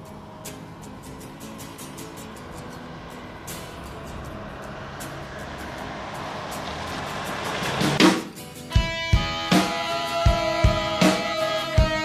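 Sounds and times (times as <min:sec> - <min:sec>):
road vehicle approaching: 0:00.0 - 0:12.0.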